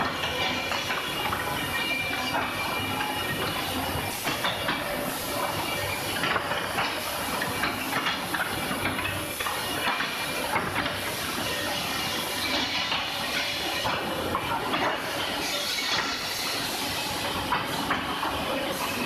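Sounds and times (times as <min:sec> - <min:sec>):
woodworking machines hissing: 0:00.0 - 0:19.0.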